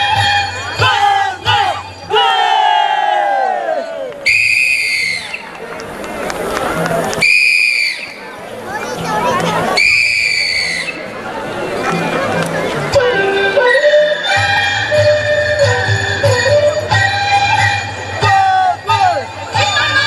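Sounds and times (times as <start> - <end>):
crowd shouting together: 0.8 - 4.2
whistle blasts: 4.2 - 5.5, 7.2 - 8.2, 9.8 - 11.1.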